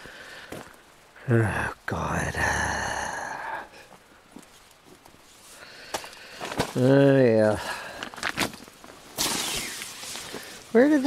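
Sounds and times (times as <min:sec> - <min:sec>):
tent zipper pulled open: 0:09.2 - 0:10.3.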